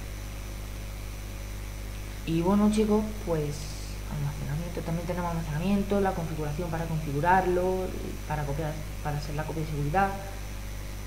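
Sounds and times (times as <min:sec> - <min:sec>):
low electrical hum: 0:00.0 - 0:11.0
microphone hiss: 0:00.0 - 0:11.0.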